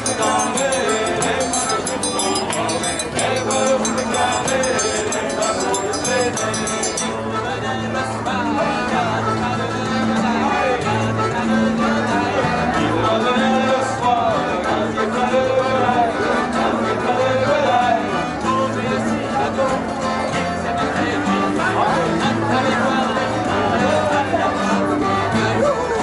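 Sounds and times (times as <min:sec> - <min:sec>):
button accordion: 0:00.0 - 0:26.0
men singing: 0:00.0 - 0:26.0
plucked long-necked string instrument: 0:00.0 - 0:26.0
strummed acoustic guitars: 0:00.0 - 0:26.0.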